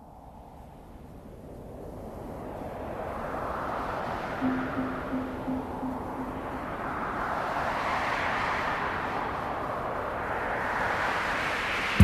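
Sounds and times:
synthesized rushing noise: 4.4s - 7.8s.

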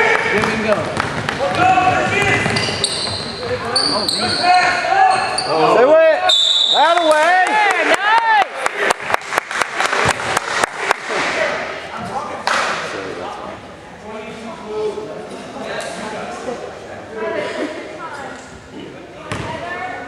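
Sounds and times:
gym crowd noise: 0.0s - 20.0s
referee's whistle: 6.2s - 7.2s.

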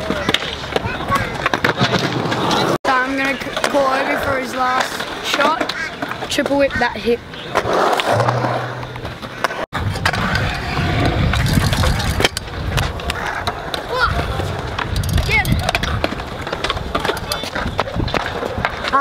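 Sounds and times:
scooter wheels rolling on concrete: 0.0s - 19.0s.

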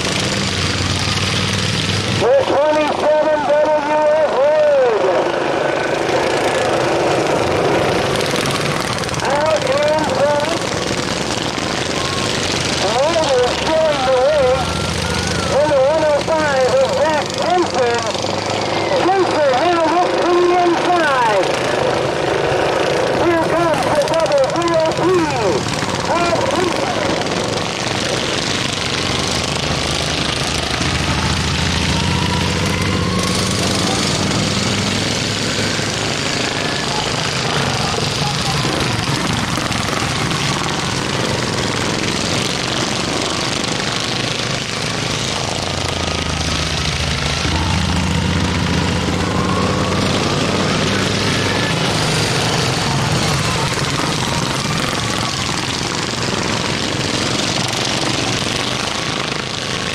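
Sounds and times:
racing lawn mower engines droning: 0.0s - 59.9s.

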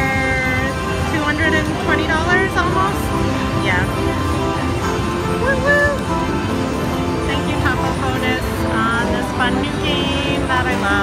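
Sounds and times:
slot machine celebration music: 0.0s - 11.0s.

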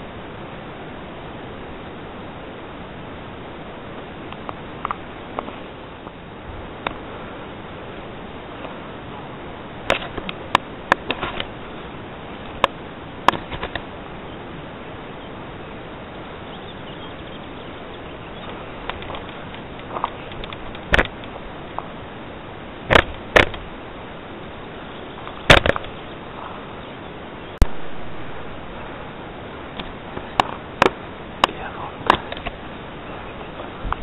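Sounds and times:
outdoor microphone hiss: 0.0s - 34.0s
sharp clicks and knocks: 9.9s - 11.5s, 12.4s - 13.9s, 18.8s - 21.9s, 22.9s - 23.6s, 25.2s - 26.0s, 29.8s - 32.6s.

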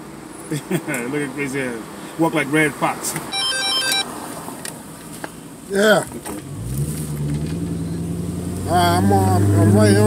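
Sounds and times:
phone ringtone beeping tune: 3.3s - 4.1s.

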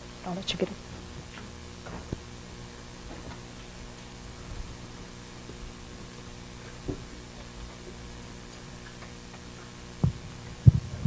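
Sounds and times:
steady room hum: 0.0s - 11.0s
microphone handling thumps: 10.0s - 11.0s.

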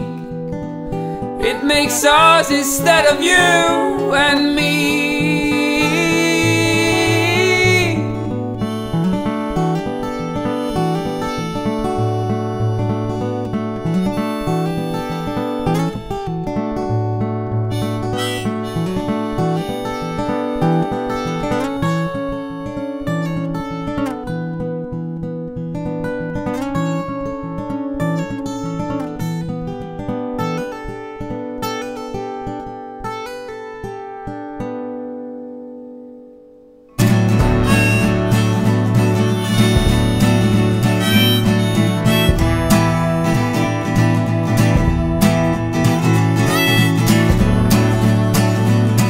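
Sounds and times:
harmonica: 0.0s - 24.0s, 37.0s - 49.0s
acoustic guitar playing: 0.0s - 49.0s.

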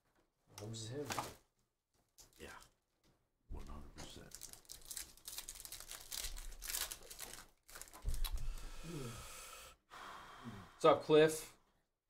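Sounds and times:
foil wrapper tearing and crinkling: 4.2s - 8.2s.

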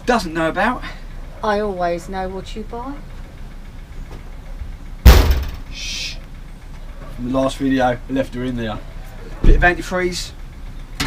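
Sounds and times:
metal cabinet door banging: 5.0s - 5.7s.

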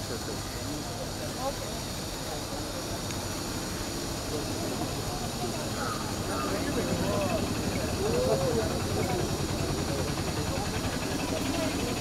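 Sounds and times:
street noise hiss: 0.0s - 12.0s.

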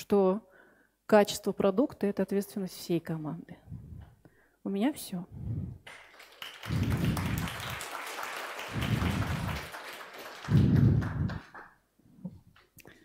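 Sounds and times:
audience applauding: 5.8s - 11.8s.

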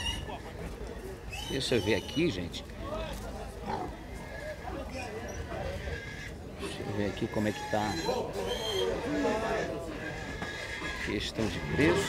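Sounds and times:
murmur of men's voices: 0.1s - 12.0s
pigs calling: 1.3s - 2.4s, 3.6s - 12.0s.

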